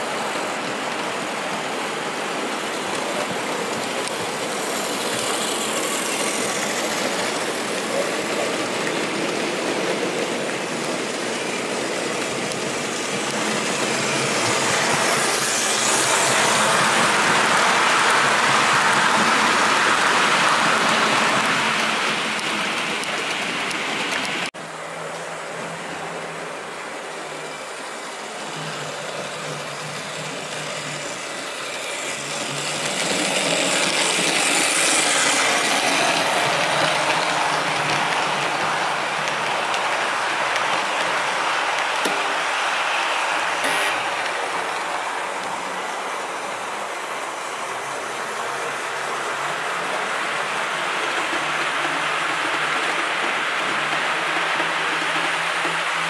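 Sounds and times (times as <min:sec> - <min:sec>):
model train faint hum: 0:00.0 - 0:56.0
model train wheels on track: 0:00.0 - 0:56.0.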